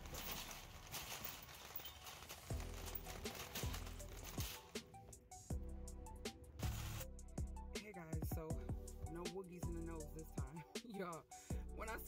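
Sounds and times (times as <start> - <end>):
shopping cart rattling: 0.0 - 4.8
background music with deep bass: 0.0 - 12.0.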